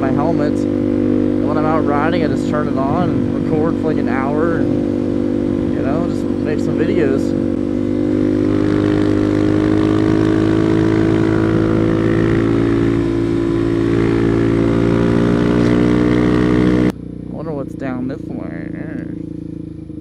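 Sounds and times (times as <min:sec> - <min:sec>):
motorcycle engine running: 0:00.0 - 0:20.0
wind: 0:00.0 - 0:20.0
person speaking: 0:01.4 - 0:04.8, 0:05.6 - 0:07.4, 0:17.3 - 0:19.2.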